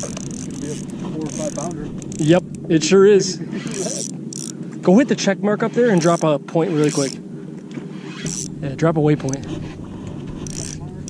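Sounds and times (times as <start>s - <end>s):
water: 0.0s - 11.0s.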